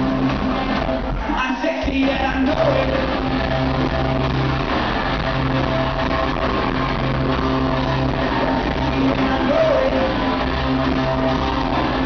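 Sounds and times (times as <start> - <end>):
live rock band playing: 0.0 - 12.0
person singing: 8.6 - 10.3.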